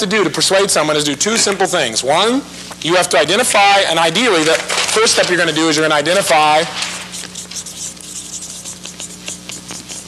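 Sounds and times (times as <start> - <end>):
steady low hum: 0.0 - 10.0
marker pen writing on paper: 6.8 - 10.0.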